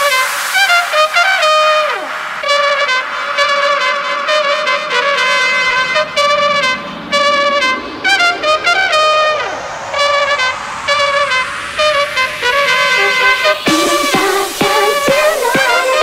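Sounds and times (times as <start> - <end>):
brass riff: 0.0 - 16.0
rising noise sweep: 0.0 - 16.0.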